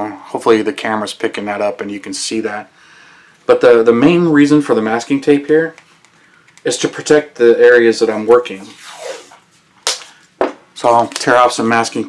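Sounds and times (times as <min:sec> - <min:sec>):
tape ripping off roll: 0:08.6 - 0:10.2.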